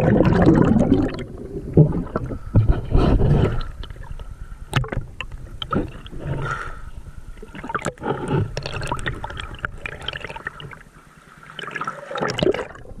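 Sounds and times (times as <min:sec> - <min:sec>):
water sloshing and gurgling: 0:00.0 - 0:13.0.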